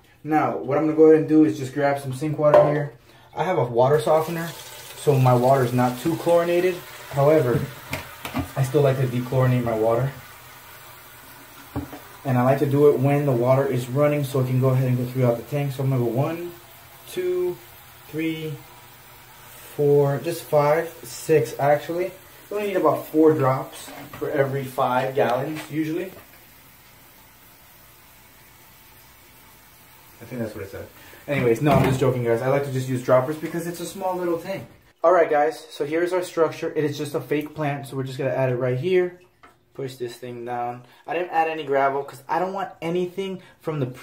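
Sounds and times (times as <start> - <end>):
tap water pouring into tank: 4.0 - 34.7.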